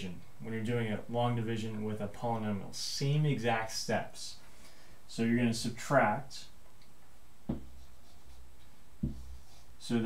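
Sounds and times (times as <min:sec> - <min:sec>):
light knock: 0:07.5 - 0:07.8, 0:09.0 - 0:09.3
marker writing on whiteboard: 0:07.5 - 0:09.7.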